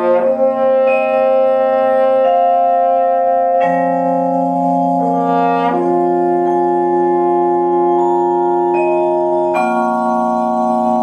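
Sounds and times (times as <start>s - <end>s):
chamber ensemble sustained notes: 0.0s - 11.0s
french horn: 0.0s - 11.0s
soft marimba strokes: 3.4s - 11.0s.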